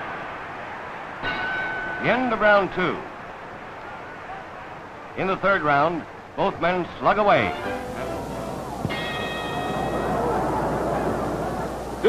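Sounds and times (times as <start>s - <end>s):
noisy background: 0.0s - 12.0s
boxing ring bell ringing: 8.9s - 10.4s.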